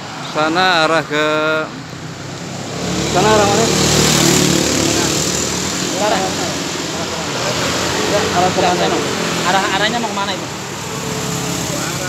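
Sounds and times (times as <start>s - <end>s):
motorcycle and scooter engines: 0.0s - 12.0s
passing traffic: 0.0s - 12.0s.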